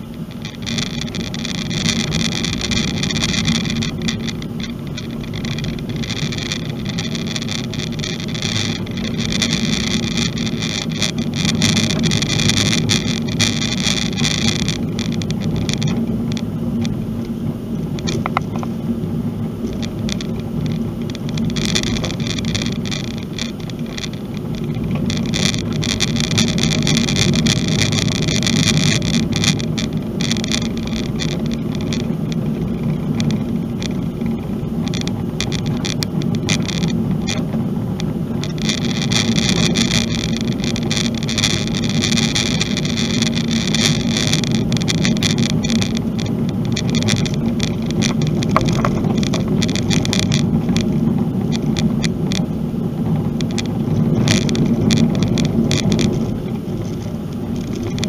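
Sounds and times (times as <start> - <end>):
low road rumble: 0.0 - 58.0.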